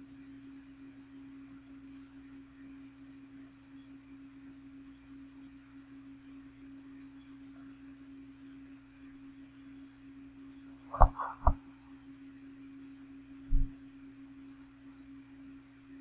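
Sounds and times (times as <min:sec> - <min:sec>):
box fan humming: 0:13.4 - 0:14.0.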